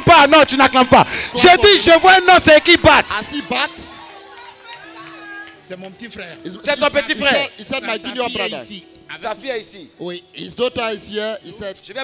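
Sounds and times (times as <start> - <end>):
person speaking: 7.1 - 9.4.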